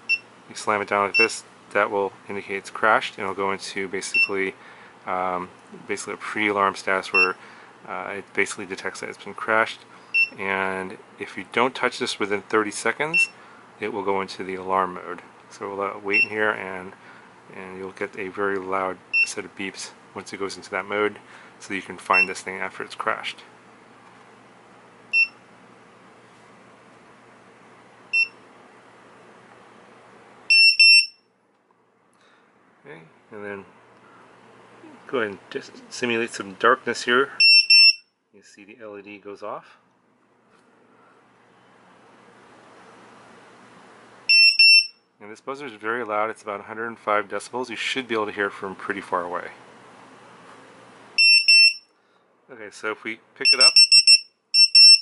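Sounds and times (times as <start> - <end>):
buzzer high beeps: 0.0 - 0.3, 1.1 - 1.4, 7.1 - 7.4, 10.1 - 10.4, 28.1 - 28.4, 30.5 - 31.2, 37.4 - 38.0, 44.3 - 45.0, 51.2 - 51.9, 53.4 - 55.0.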